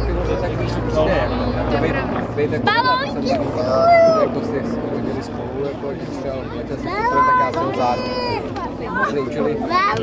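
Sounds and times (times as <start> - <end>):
aircraft engines droning: 0.0 - 10.0.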